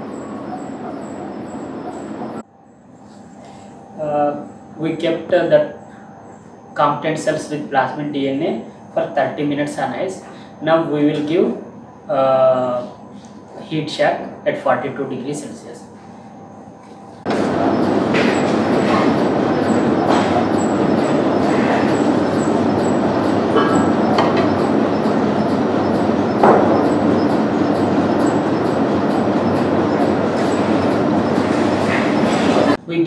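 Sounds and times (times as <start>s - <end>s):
water bath mechanical noise: 0.0s - 33.0s.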